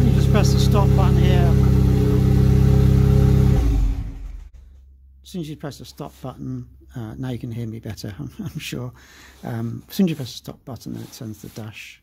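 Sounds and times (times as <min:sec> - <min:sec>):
car engine idling and shutting off: 0:00.0 - 0:04.6.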